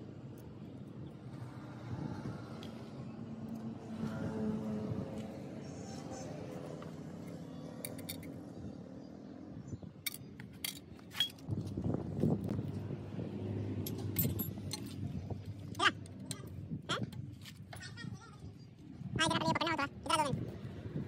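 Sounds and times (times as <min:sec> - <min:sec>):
metal tools clinking on engine: 0:07.8 - 0:08.4, 0:10.0 - 0:11.4, 0:13.8 - 0:15.1.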